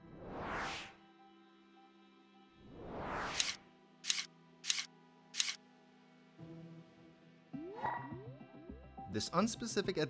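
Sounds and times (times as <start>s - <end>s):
soft background music: 0.0s - 10.0s
camera-shutter-like clicks: 3.4s - 5.6s.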